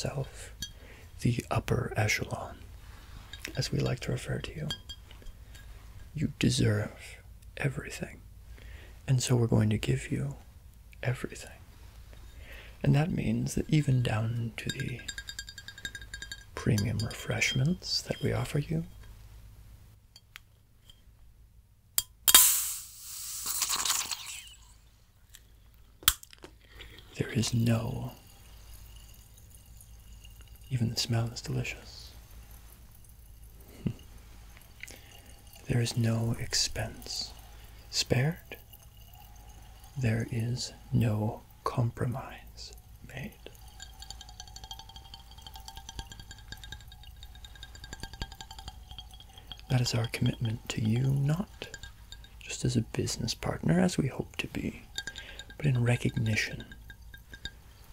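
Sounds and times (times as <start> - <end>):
bottle seal cracking: 22.0 - 24.7
carbonation hissing: 22.3 - 24.9, 26.6 - 57.9.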